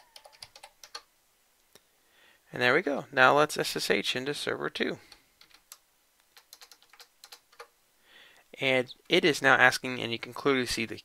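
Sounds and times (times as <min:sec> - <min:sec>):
faint keyboard keystrokes: 0:05.1 - 0:07.7.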